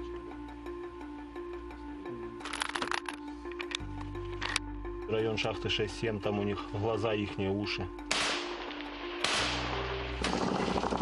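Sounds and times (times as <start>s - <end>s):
low steady drone: 0.0s - 11.0s
sharp cracks: 8.1s - 11.0s.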